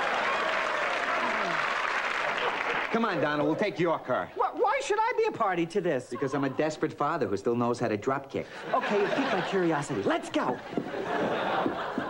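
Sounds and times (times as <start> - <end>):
audience applauding: 0.0 - 3.8
audience laughing: 1.1 - 4.0, 6.1 - 6.9, 8.5 - 12.0.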